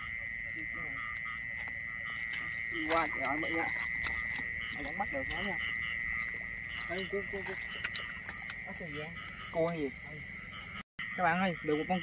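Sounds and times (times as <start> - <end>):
frog calls: 0.0 - 12.0
frogs and insects droning: 0.0 - 12.0.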